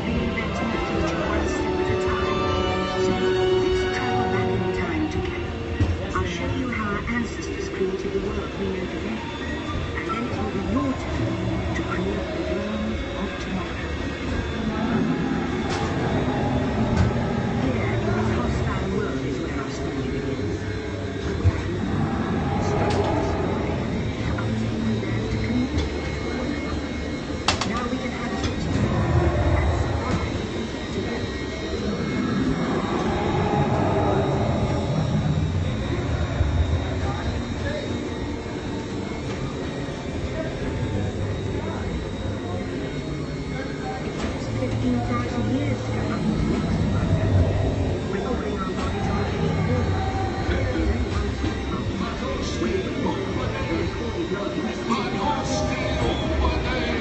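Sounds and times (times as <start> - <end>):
indistinct voices: 0.0 - 57.0
ride vehicle low rumble: 27.6 - 41.8.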